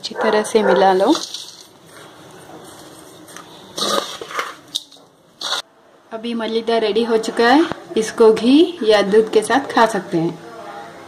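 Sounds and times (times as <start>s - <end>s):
crumbs scraping steel bowl: 0.9s - 5.7s.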